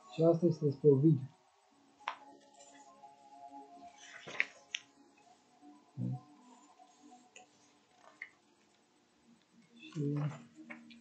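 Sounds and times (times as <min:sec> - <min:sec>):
faint background music: 0:00.0 - 0:11.0
book pages turning: 0:04.0 - 0:04.9.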